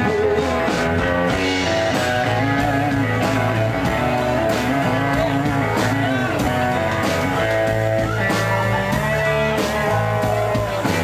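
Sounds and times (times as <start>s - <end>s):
bass line: 0.0s - 11.0s
lead guitar with bending notes: 0.0s - 11.0s
steady drum beat: 0.0s - 11.0s.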